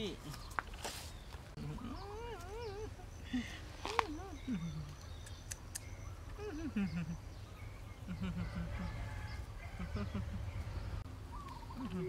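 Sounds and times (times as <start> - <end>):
baby monkey crying: 1.6 - 3.2.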